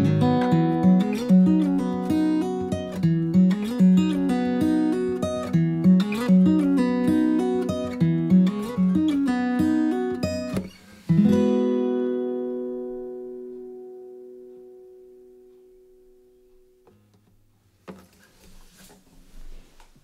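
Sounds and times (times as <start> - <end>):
fingerpicked acoustic guitar: 0.0 - 19.8.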